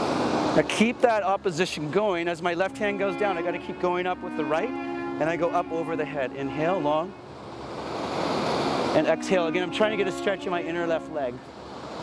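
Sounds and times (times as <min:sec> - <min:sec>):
ocean surf breaking: 0:05.2 - 0:12.0.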